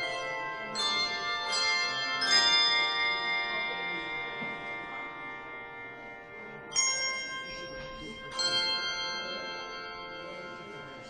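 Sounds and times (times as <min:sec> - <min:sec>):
bell ringing with overtones: 0:00.0 - 0:11.0.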